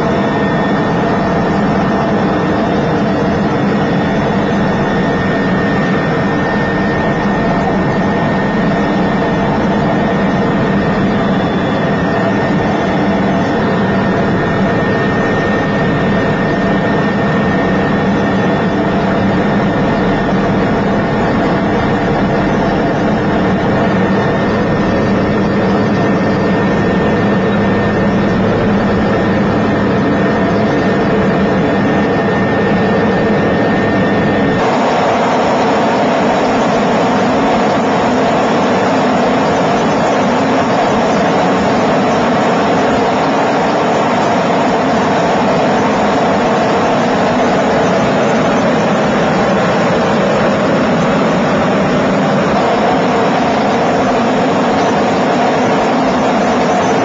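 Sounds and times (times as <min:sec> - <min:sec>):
helicopter engine and rotor drone: 0:00.0 - 0:57.0
thin high whine: 0:00.0 - 0:57.0.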